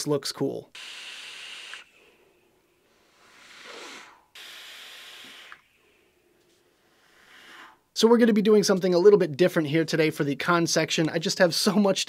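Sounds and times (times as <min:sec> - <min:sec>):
breathy hissing of vaping: 0:00.8 - 0:07.9.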